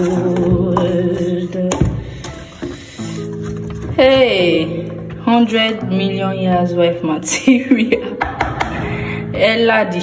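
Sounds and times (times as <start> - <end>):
background music with sustained notes: 0.0 - 10.0.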